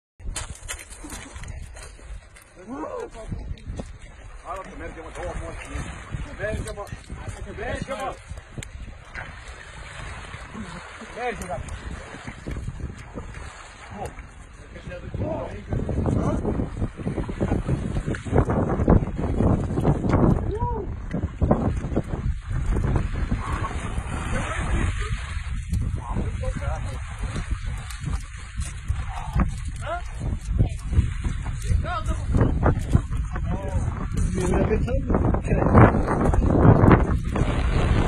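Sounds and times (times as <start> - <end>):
water lapping at shore: 0.2 - 38.0
wind buffeting microphone: 0.2 - 38.0.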